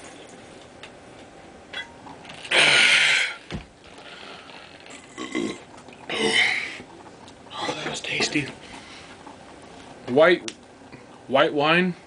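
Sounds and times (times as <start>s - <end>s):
man burping: 2.4s - 3.4s, 5.0s - 6.8s.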